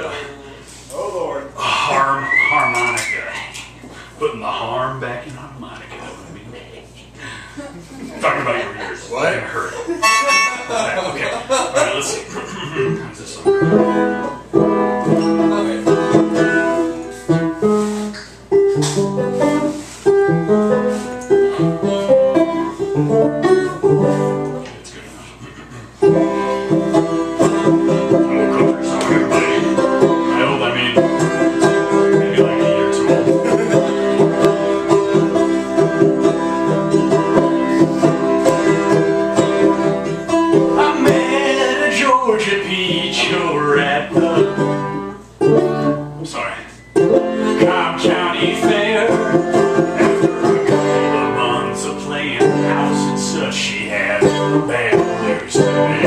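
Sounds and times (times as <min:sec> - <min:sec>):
plucked string instrument strummed: 0:13.4 - 0:24.7, 0:26.0 - 0:46.2, 0:46.9 - 0:56.0.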